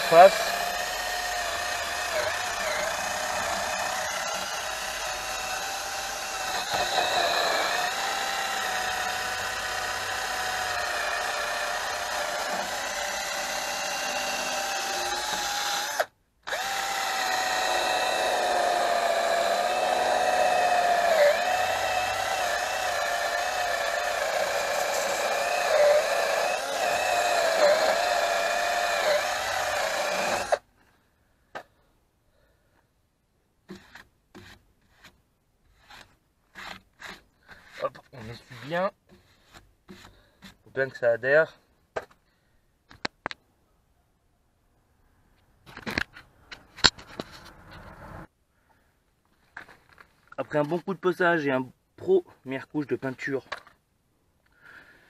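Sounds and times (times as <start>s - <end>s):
drill wire brush scrubbing rust: 0.0s - 30.6s, 33.7s - 41.0s.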